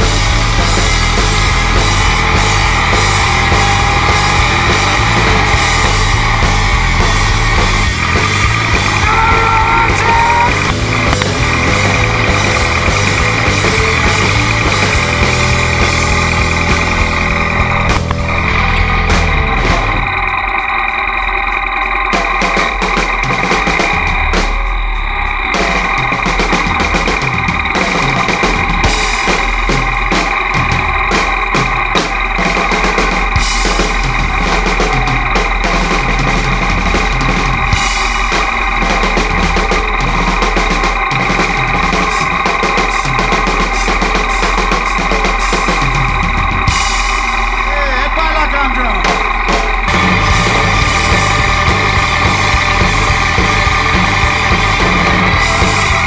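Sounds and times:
motorcycle engine idling: 0.0 - 56.0
rock music: 0.0 - 56.0.

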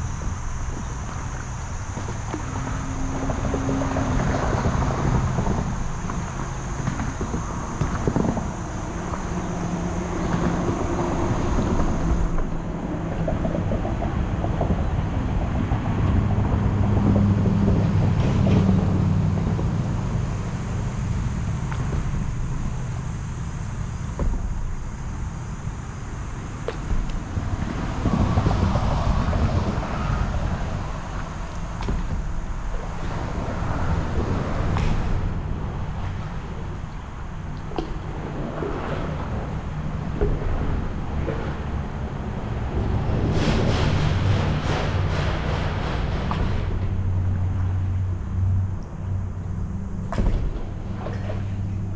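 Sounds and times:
road traffic rumble: 0.0 - 51.9
vehicles passing: 0.0 - 51.9
wind on microphone: 0.0 - 51.9.

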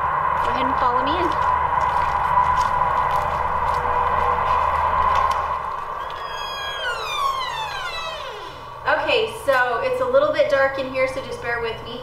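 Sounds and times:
siren winding down: 5.9 - 8.9.

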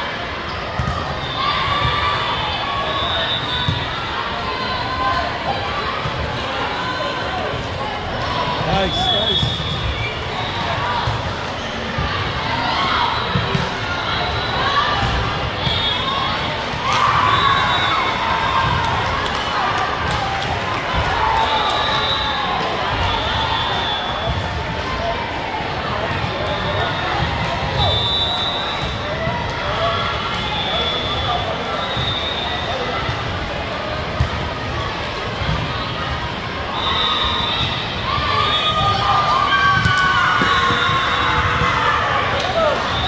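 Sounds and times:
people talking and shouting: 0.0 - 43.0.

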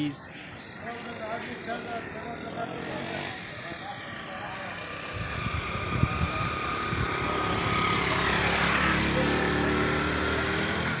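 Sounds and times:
motorcycle engine passing: 0.8 - 11.0.

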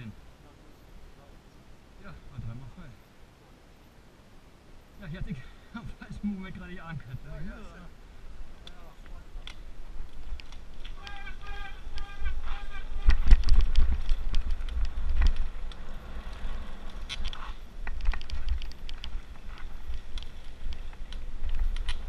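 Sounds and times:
bike rattling over dirt: 9.0 - 22.0
wind on microphone: 9.6 - 22.0.

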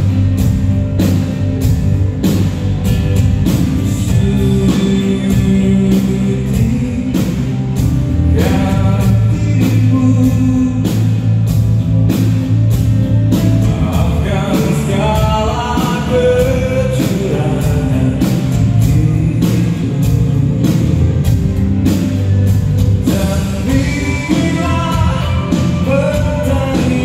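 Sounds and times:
pop-rock band playing live: 0.0 - 27.0
lead vocal singing: 3.8 - 11.7, 13.4 - 21.4, 22.8 - 27.0.

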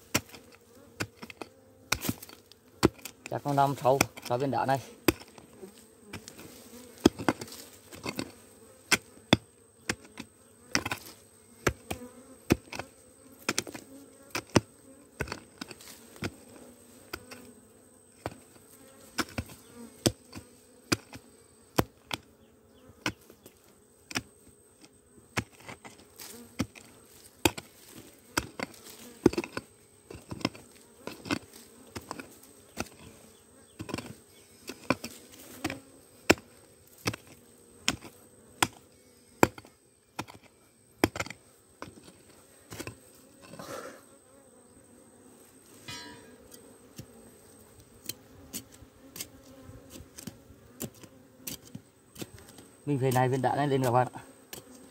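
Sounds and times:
hoe chopping into hard soil: 0.0 - 5.5, 6.1 - 16.4, 19.1 - 21.2, 25.3 - 33.1, 33.7 - 38.8, 39.4 - 43.9
bees buzzing: 0.0 - 54.9.

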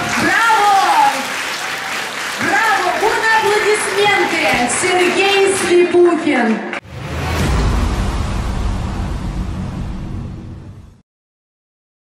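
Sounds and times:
low rumbling whoosh: 6.8 - 11.0.

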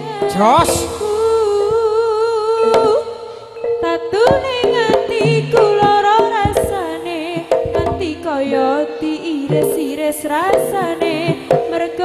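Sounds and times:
drum stroke: 0.2 - 3.1, 4.2 - 8.4.

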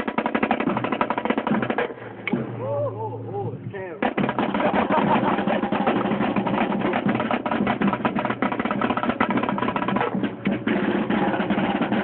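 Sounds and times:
snare drum played fast: 0.0 - 1.9, 4.0 - 12.0.

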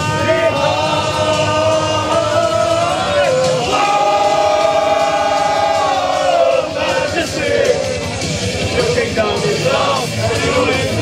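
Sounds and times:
crowd singing: 0.0 - 11.0
karaoke backing track: 0.0 - 11.0.

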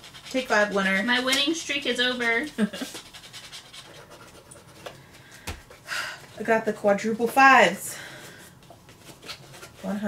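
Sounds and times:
scratching lottery tickets: 0.0 - 4.9, 9.0 - 10.0.

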